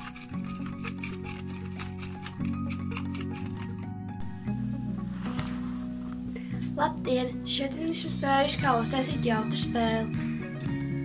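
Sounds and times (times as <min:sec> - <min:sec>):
wind chime jingling and clicking: 0:00.0 - 0:04.3
background music: 0:00.0 - 0:11.0.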